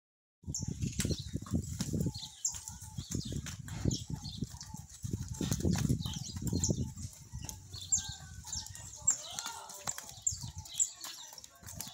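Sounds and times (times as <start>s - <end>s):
calves moving about: 1.0s - 11.9s.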